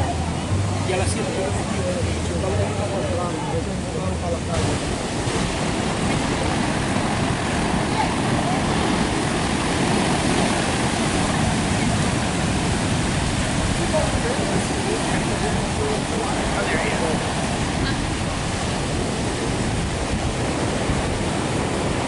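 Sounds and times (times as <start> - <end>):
ocean surf breaking on beach: 0.0 - 22.0
wind on microphone: 4.5 - 22.0.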